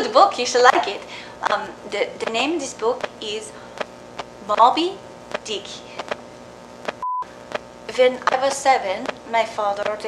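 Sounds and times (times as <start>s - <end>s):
faint hiss with clicks: 3.8s - 10.0s.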